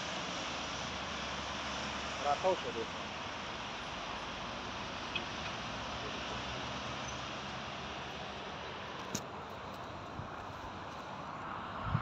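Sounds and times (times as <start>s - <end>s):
cars passing: 0.0s - 12.0s.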